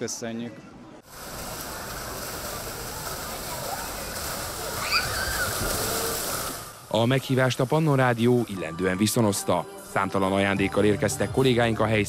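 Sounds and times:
water splashing in pool: 1.1s - 8.1s
faint shouts and chatter: 1.6s - 6.6s.

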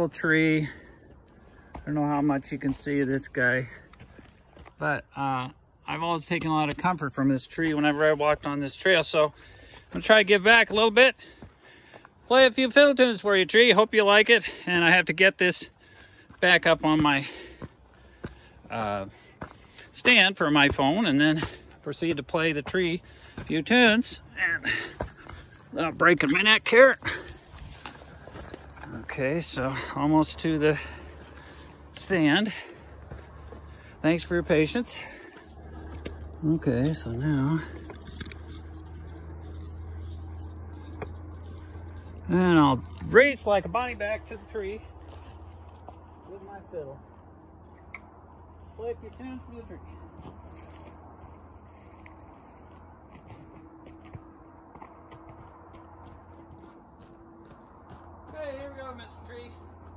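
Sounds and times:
low outdoor hum: 0.0s - 59.9s
faint footsteps: 0.6s - 4.9s, 9.4s - 12.3s, 15.7s - 59.9s.

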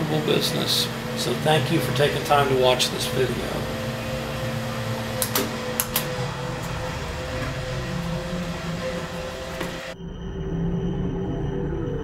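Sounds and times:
coffee roaster whirring: 0.0s - 10.0s.

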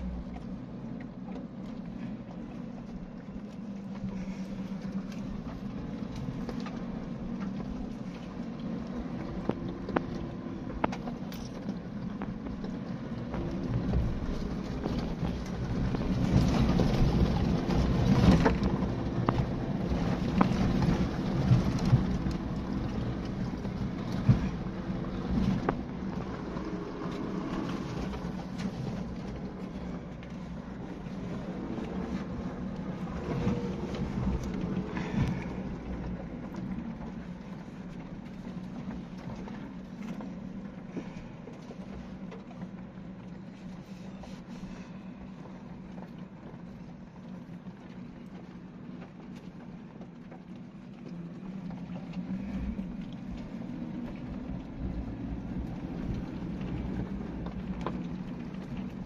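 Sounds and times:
car engine droning: 0.0s - 59.0s
tyre and track noise: 0.0s - 59.0s.

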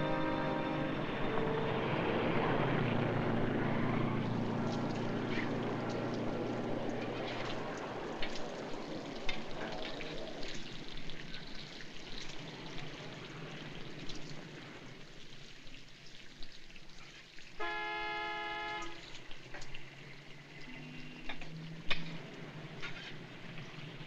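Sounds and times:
film soundtrack hiss: 0.0s - 24.0s
car horn blast: 17.6s - 19.0s.

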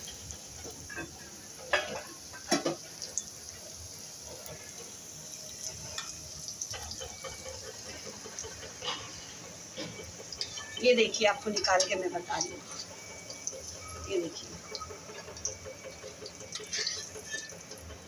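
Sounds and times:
okra sizzling in hot oil: 0.0s - 18.0s
spoon clinking against pan: 16.6s - 17.6s.

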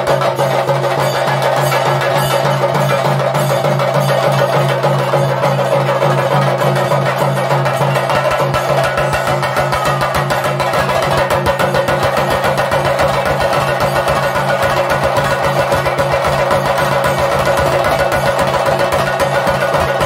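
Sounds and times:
drums beaten with sticks: 0.0s - 20.0s.

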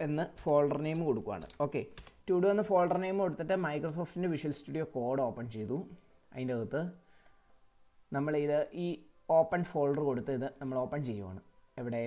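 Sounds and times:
person speaking: 0.0s - 7.0s, 8.1s - 12.0s
keyboard keystrokes: 0.8s - 2.2s.

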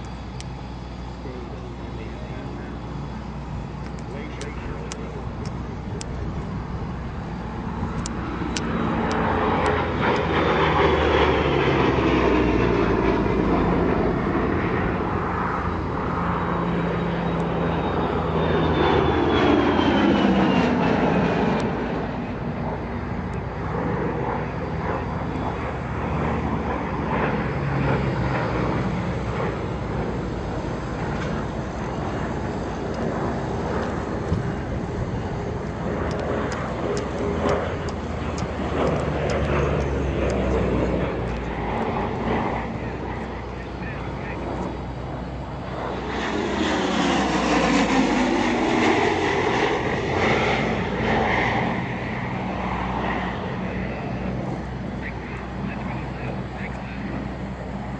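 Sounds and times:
propeller plane engines flying by: 0.0s - 57.9s.

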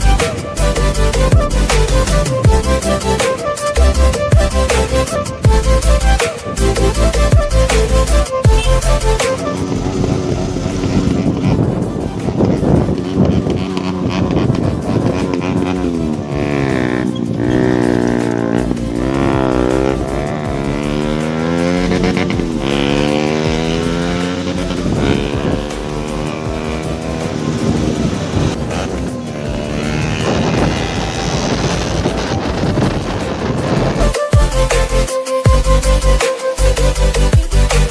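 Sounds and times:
background music: 0.0s - 37.9s
motorcycle engine revving: 0.0s - 37.9s.

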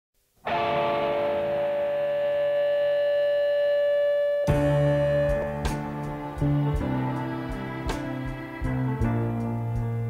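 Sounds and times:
distorted electric guitar chord: 0.4s - 10.0s.

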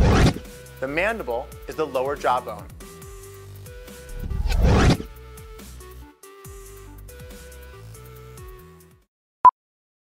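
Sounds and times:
background music: 0.0s - 9.1s
whoosh sound effect: 4.1s - 5.1s.

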